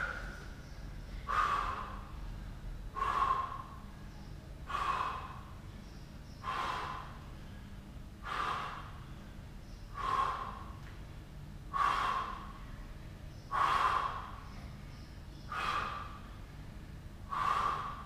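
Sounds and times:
man breathing out forcefully: 1.1 - 5.6, 6.4 - 10.8, 11.7 - 12.9, 13.5 - 14.6, 15.4 - 16.6, 17.2 - 18.0.

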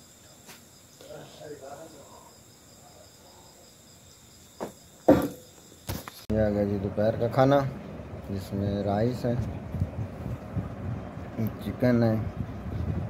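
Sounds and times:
crickets chirping: 0.0 - 13.0
sharp knocks: 4.6 - 5.5.

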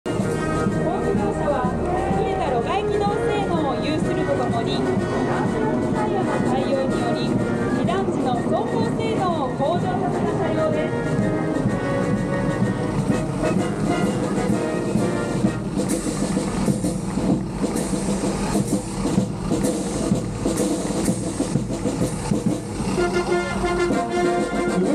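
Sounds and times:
brass band playing: 0.0 - 24.9
vehicle engines driving past: 0.1 - 24.9.

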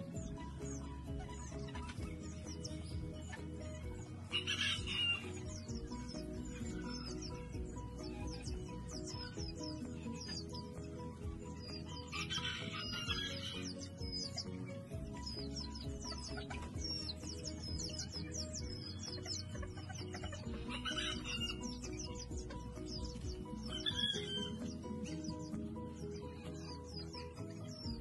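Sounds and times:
background music: 0.0 - 28.0
chickens chirping: 0.0 - 28.0.

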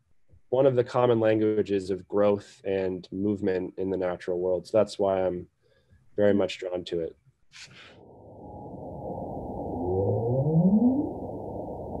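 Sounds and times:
low call sweeping upward: 8.0 - 12.0
muffled low noise: 8.0 - 12.0.

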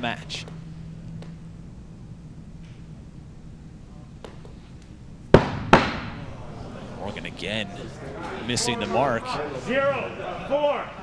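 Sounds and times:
axes thudding into wooden boards: 5.4 - 6.2.

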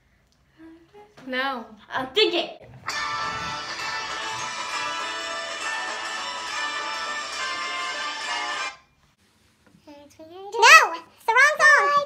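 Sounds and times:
christmas song from phone speaker: 2.8 - 8.9.

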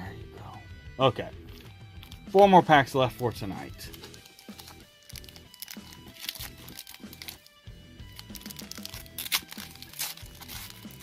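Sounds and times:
foil pack crinkling: 3.8 - 11.0.

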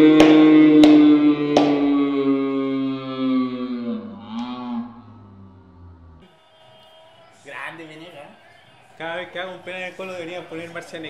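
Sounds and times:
sharp hand clap: 0.0 - 1.9
men cheering shout: 0.0 - 3.5, 4.8 - 11.0.

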